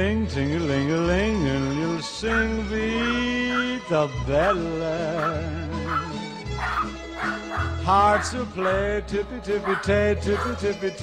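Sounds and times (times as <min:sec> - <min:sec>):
background music: 0:00.0 - 0:11.0
dog barking: 0:02.3 - 0:08.9, 0:09.5 - 0:10.8.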